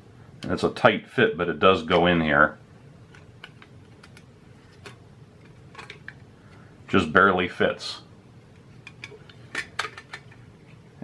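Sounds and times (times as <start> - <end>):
metal tin clicking and clinking: 8.8 - 10.4.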